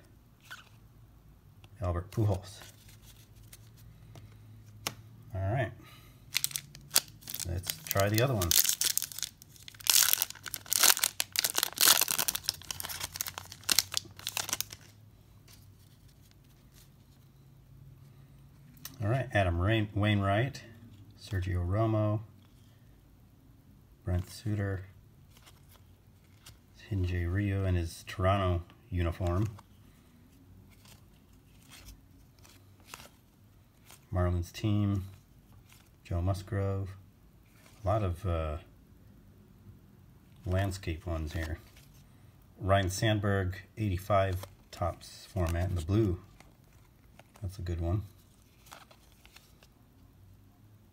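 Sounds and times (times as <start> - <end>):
faint clicks of cards handled: 1.6 - 5.1, 45.4 - 49.7
trading cards flipped by hand: 2.1 - 5.0, 30.7 - 33.2, 48.2 - 49.7
foil wrapper tearing and crinkling: 6.3 - 15.0.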